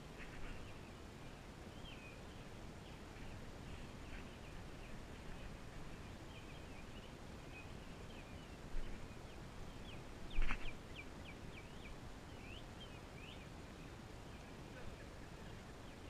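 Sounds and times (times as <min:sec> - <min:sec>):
small birds chirping: 0:00.0 - 0:16.0.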